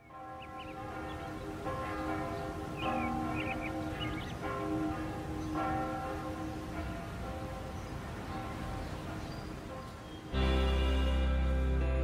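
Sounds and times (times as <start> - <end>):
small birds chirping: 0.0 - 5.8, 7.4 - 11.0
church bells ringing: 0.0 - 12.0.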